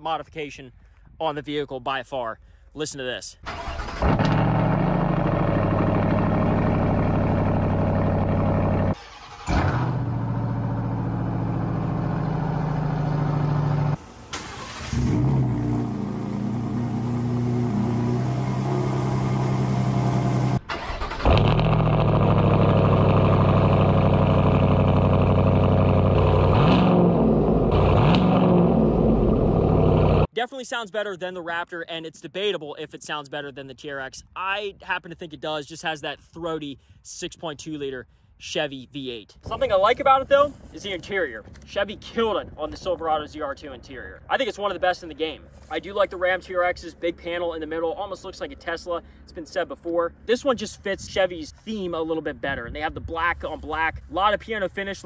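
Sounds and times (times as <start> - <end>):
truck engine cold start idling: 3.5 - 11.0, 12.8 - 15.5, 20.5 - 25.2
truck engine revving: 3.6 - 30.3.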